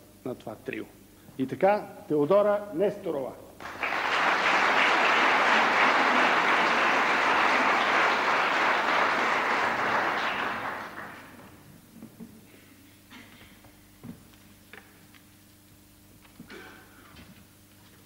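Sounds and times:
audience applauding: 0:03.6 - 0:11.6.

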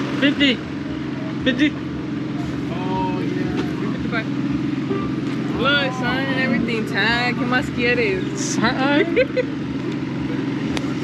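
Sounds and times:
engine humming: 0:00.0 - 0:11.0
people talking: 0:00.1 - 0:09.5.

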